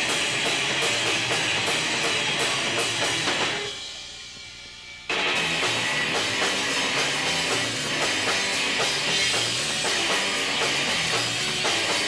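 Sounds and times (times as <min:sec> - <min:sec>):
distorted electric guitar: 0:00.0 - 0:12.0
drum kit: 0:00.0 - 0:12.0.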